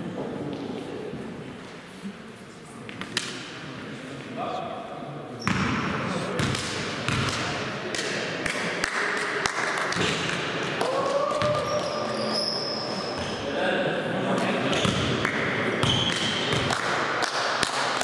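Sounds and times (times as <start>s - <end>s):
players' voices: 0.1s - 17.1s
basketball bouncing in echoing hall: 5.4s - 13.4s, 14.7s - 18.0s.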